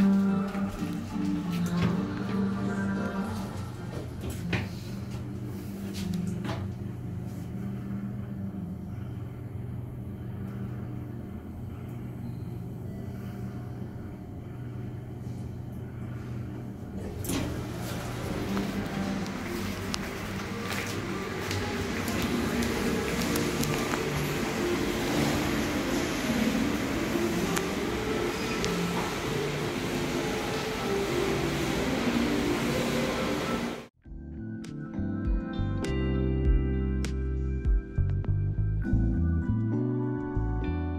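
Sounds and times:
elevator hum and rumble: 0.0 - 34.0.

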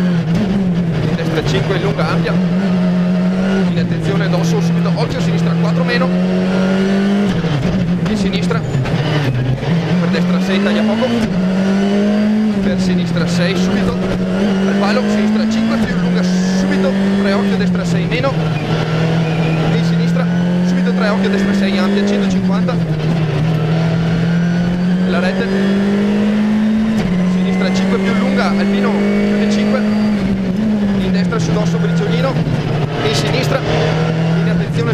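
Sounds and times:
rally car engine accelerating: 0.0 - 34.9.

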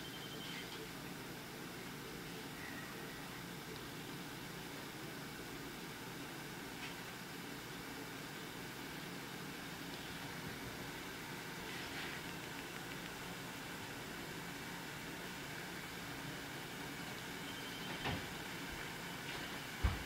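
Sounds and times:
water heating in a pot: 0.8 - 20.0.

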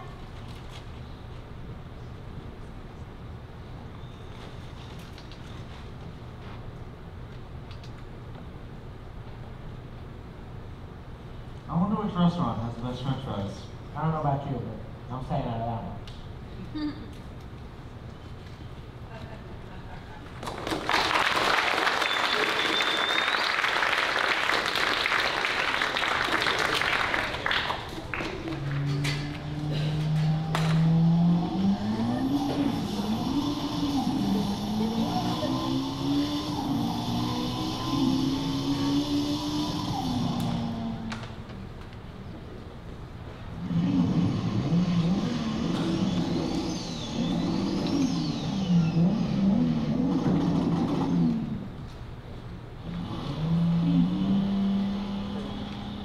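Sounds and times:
audience applause: 20.4 - 29.0
car engine revving sound effects: 28.5 - 41.1, 43.6 - 51.7, 52.8 - 56.0.

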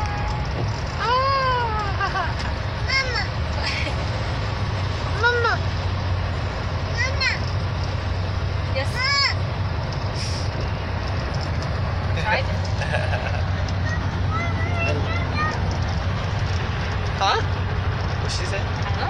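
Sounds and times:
car road and engine drone: 0.0 - 19.0.

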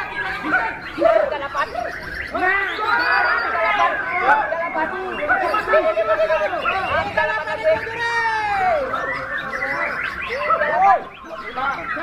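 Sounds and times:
people chattering: 0.0 - 12.0.

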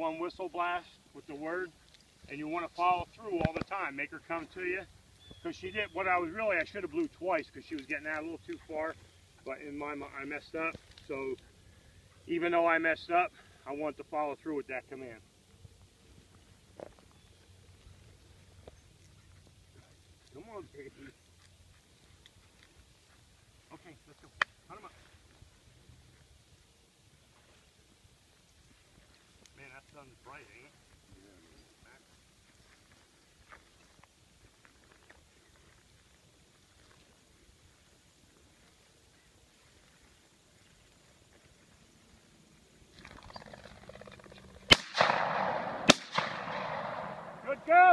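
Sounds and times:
faint ticks and swishes: 0.3 - 5.4, 15.2 - 44.7.

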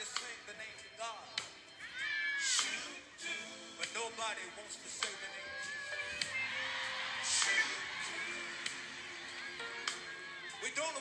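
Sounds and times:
man's voice: 0.0 - 1.6, 2.4 - 11.0
church keyboard music: 0.0 - 11.0.

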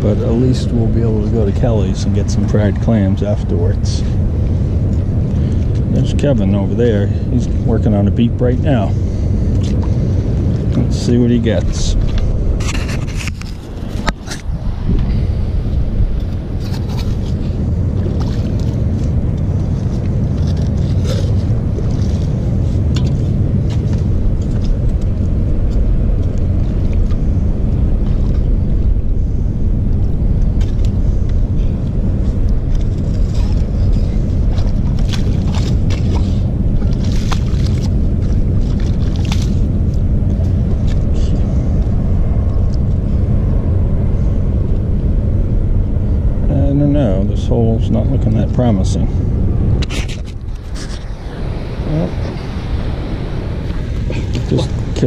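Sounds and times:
wind buffeting microphone: 0.0 - 55.0
short scrapes and clicks: 12.6 - 14.5.

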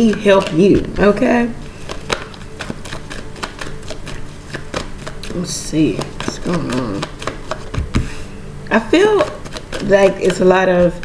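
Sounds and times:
cards clicking and snapping: 0.0 - 1.1, 1.8 - 8.2, 9.2 - 11.0.

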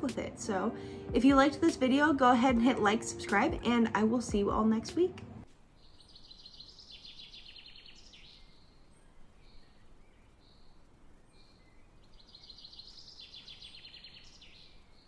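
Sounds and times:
low hiss: 4.8 - 15.0
bird trill: 5.8 - 10.8, 11.4 - 15.0.

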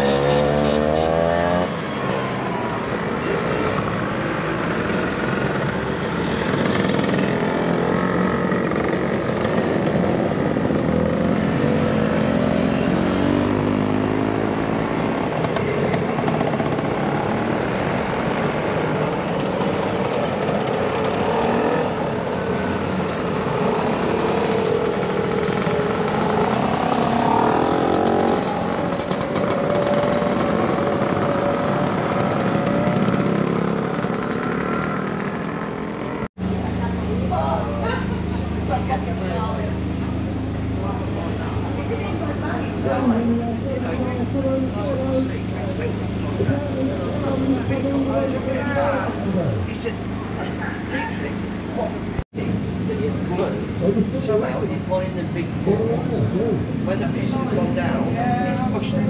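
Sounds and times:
motor scooters revving past: 0.0 - 52.2.

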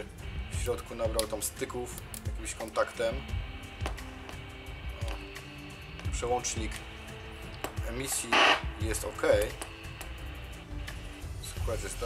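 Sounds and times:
steady tones and music: 0.0 - 12.0.

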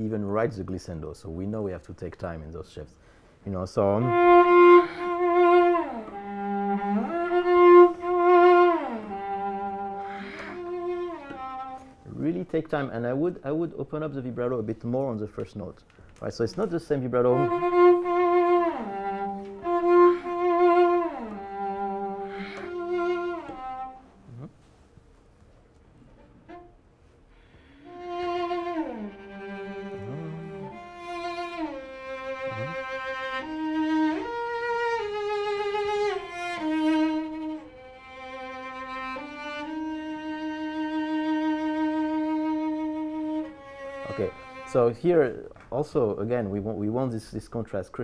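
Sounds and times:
solo cello melody: 0.0 - 0.8, 3.7 - 13.7, 16.5 - 45.5.

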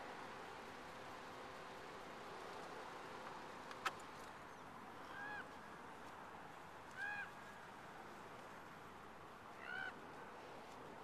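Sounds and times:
outdoor background hiss: 0.0 - 11.0
raven call: 7.0 - 7.4, 9.6 - 10.0.

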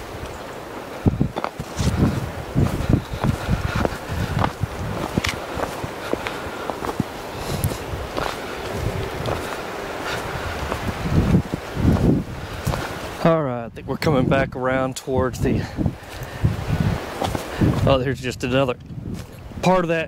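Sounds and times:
footsteps crunching on dry leaves: 0.3 - 13.2, 16.0 - 17.9
heavy low thumps: 1.0 - 12.9.

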